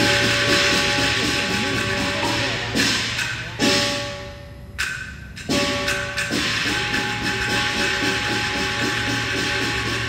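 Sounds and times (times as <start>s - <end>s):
held instrumental tones: 0.0s - 10.0s
percussion rattling roll: 4.8s - 10.0s.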